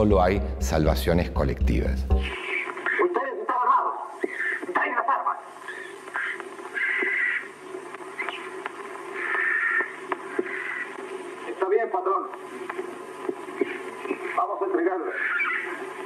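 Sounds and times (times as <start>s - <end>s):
thin hissy film voices: 2.4s - 15.9s.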